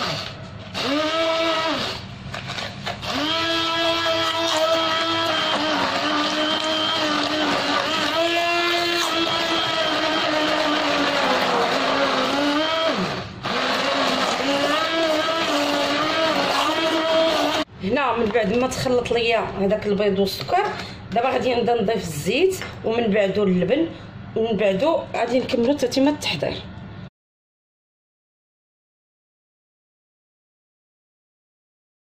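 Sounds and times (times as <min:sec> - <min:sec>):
electric hand blender whirring: 0:00.0 - 0:02.1, 0:02.9 - 0:17.7.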